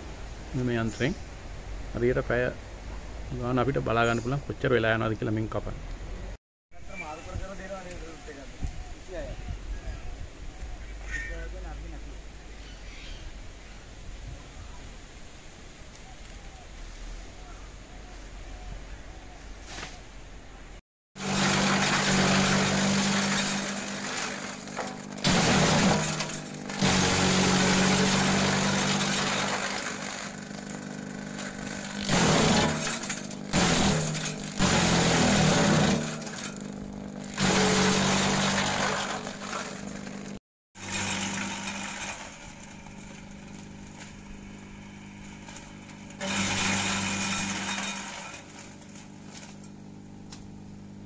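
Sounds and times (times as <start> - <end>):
branches being chopped crackling: 19.6 - 20.0, 21.2 - 40.3, 40.9 - 50.6
electric shredder motor hum: 21.2 - 50.7.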